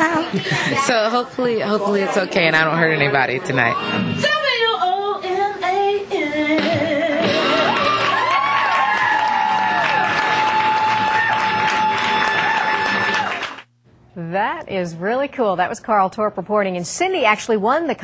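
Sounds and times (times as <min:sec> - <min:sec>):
audience whooping and cheering: 0:07.2 - 0:13.6.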